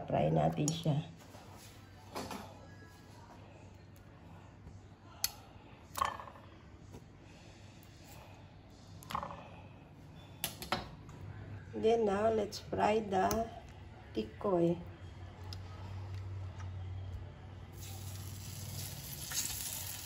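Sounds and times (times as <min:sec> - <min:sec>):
faint background music: 0:00.0 - 0:20.0.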